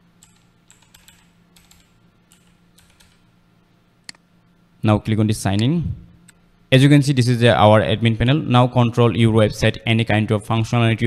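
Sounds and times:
faint keyboard typing: 0:00.2 - 0:03.2.

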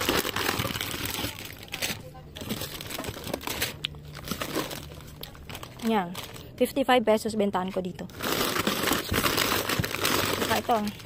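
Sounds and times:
plastic packets crinkling: 0:00.0 - 0:06.8, 0:08.0 - 0:11.0.

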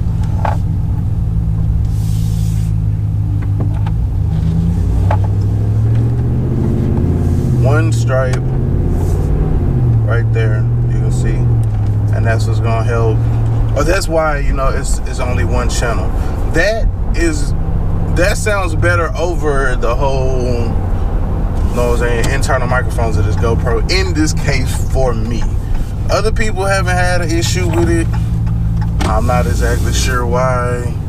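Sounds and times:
engine and road drone: 0:00.0 - 0:31.0.

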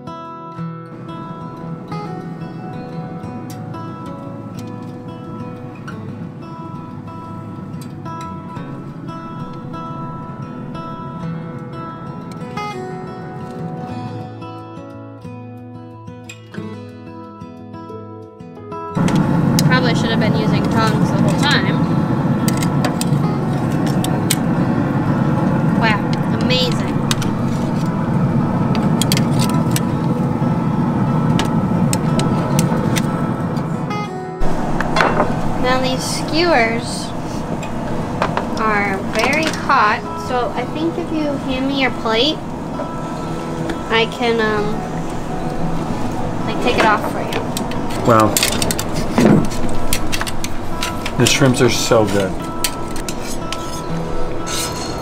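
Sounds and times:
steady low rumble: 0:19.0 - 0:55.0
dishes and cutlery clinking: 0:52.0 - 0:55.0.

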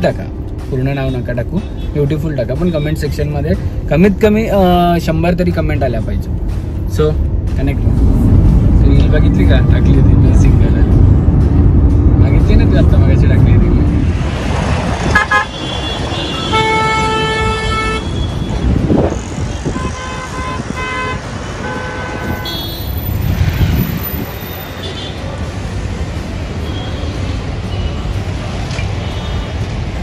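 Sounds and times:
engine and tyre rumble: 0:00.0 - 0:30.0
car horns honking: 0:15.0 - 0:18.8, 0:19.5 - 0:23.1.

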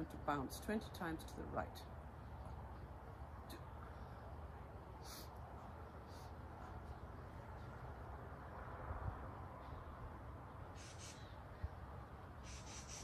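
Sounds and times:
wind rumble on microphone: 0:07.4 - 0:10.4.

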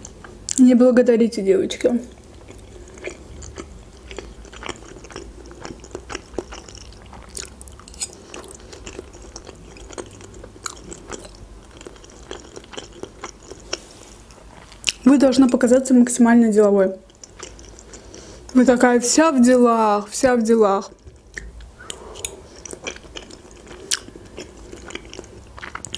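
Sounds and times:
chewing with wet mouth clicks: 0:02.1 - 0:13.8, 0:17.0 - 0:18.6, 0:20.9 - 0:25.9.

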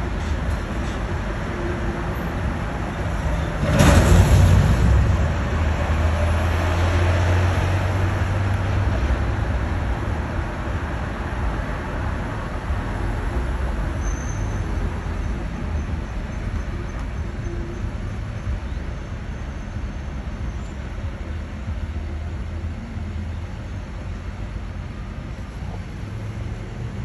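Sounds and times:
road noise from passing cars: 0:00.0 - 0:27.0
vehicle engine rumble passing: 0:00.0 - 0:27.0
sudden loud burst of noise: 0:03.6 - 0:06.9.

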